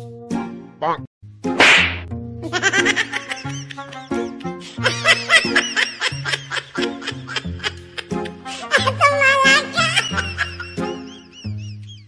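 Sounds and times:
light comedy background music: 0:00.0 - 0:12.0
whip-crack swish effect: 0:01.5 - 0:02.1
canned laughter: 0:02.5 - 0:12.0.

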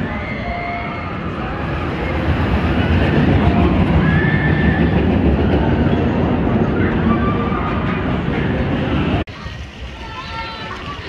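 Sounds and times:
coaster wheels rumbling on rail: 0:00.0 - 0:11.0.

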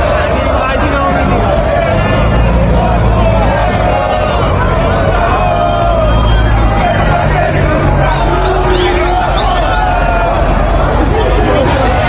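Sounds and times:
bus engine rumble: 0:00.0 - 0:12.0
supporters shouting and chanting: 0:00.0 - 0:12.0.

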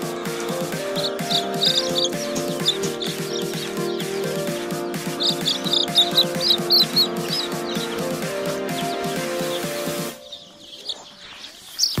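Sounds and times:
baby chicks peeping: 0:00.0 - 0:12.0
background music: 0:00.0 - 0:12.0.

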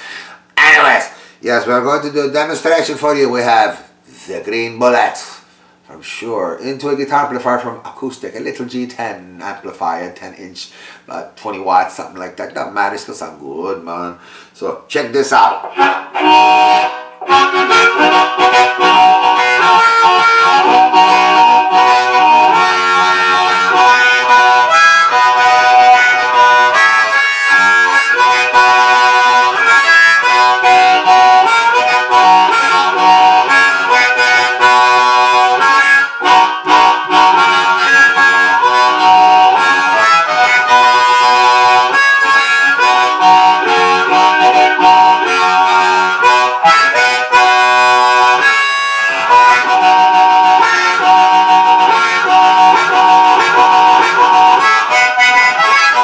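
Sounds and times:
amplified harmonica: 0:00.0 - 0:01.4, 0:15.6 - 0:56.0.

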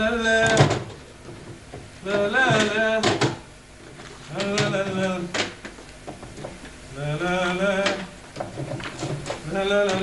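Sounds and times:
man singing drawn-out notes: 0:00.0 - 0:00.8, 0:02.0 - 0:03.4, 0:04.3 - 0:05.4, 0:06.9 - 0:08.2, 0:09.4 - 0:10.0
objects knocking in a wooden drawer: 0:00.4 - 0:06.8, 0:07.8 - 0:10.0.

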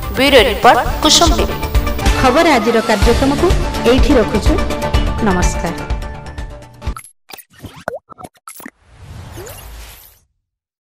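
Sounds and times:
cartoon pops and plops: 0:07.3 - 0:08.8.

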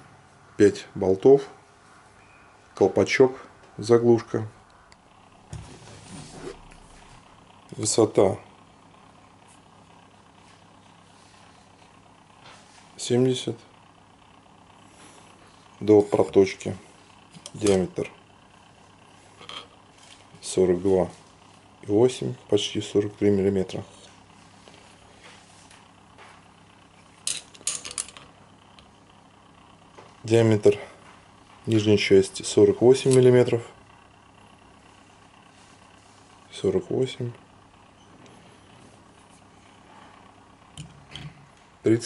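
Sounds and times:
faint low hum with hiss: 0:00.0 - 0:42.0.

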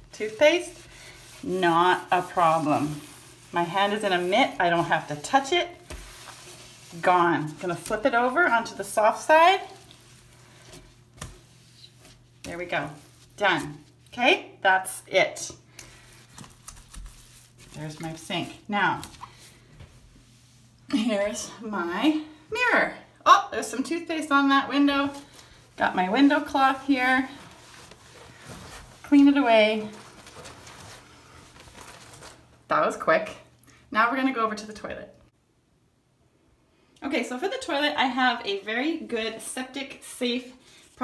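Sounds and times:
cloth wiping glass: 0:00.0 - 0:14.0, 0:24.8 - 0:31.1
low steady hum: 0:00.0 - 0:41.0
cloth rubbing on glass: 0:00.1 - 0:07.7.

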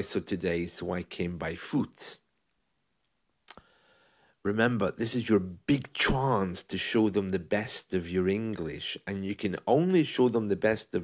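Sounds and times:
faint hiss: 0:03.4 - 0:11.0.

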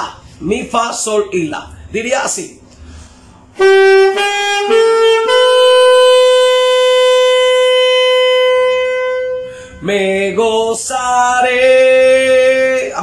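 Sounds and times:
alto saxophone notes: 0:03.5 - 0:10.4.

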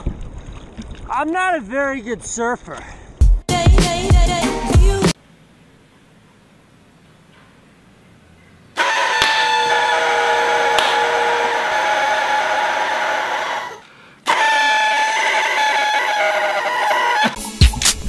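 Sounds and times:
music with a beat: 0:03.2 - 0:05.2, 0:17.4 - 0:18.0
party blower buzzing: 0:08.8 - 0:13.6, 0:14.2 - 0:17.4.

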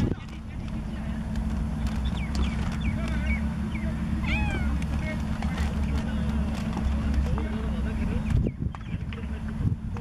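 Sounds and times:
steady low hum: 0:00.0 - 0:10.0
cats meowing: 0:04.2 - 0:04.9.

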